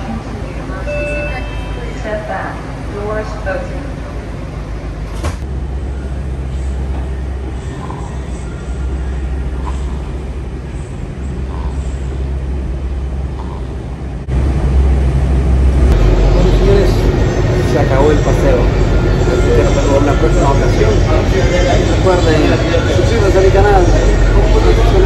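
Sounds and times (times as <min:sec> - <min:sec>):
subway car rumbling: 0:00.0 - 0:25.0.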